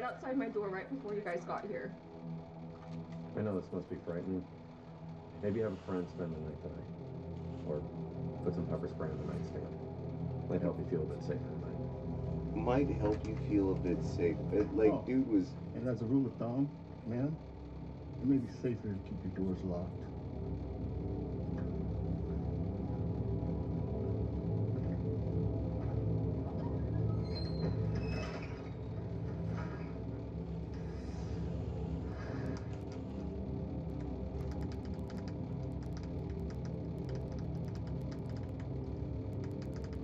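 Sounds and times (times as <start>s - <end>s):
dark horror score drone: 0.0s - 40.0s.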